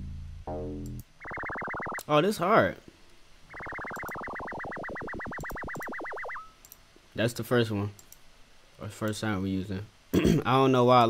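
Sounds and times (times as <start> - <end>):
low synth bass notes: 0.0 - 1.0
rapidly pulsing synth tone: 1.2 - 2.0, 3.5 - 6.6.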